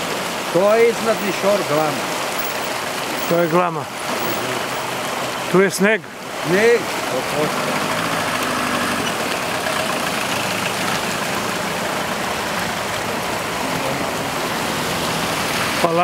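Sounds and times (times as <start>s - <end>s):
heavy rain: 0.0s - 16.0s.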